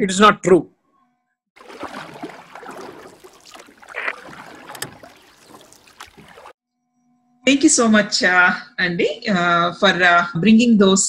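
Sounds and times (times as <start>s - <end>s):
splashing water-like noise: 1.6s - 6.6s.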